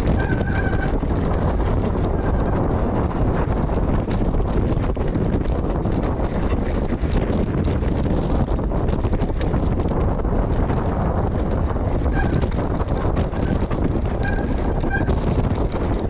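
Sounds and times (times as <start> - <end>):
bike clicking and rattling: 0.0 - 16.0
tyres rolling over gravel: 0.0 - 16.0
wind buffeting microphone: 0.0 - 16.0.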